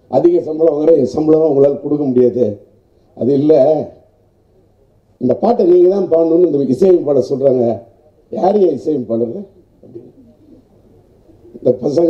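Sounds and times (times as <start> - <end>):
man speaking into a microphone: 0.1 - 4.1, 5.2 - 10.1, 11.5 - 12.0
faint low murmuring voice: 9.6 - 11.8.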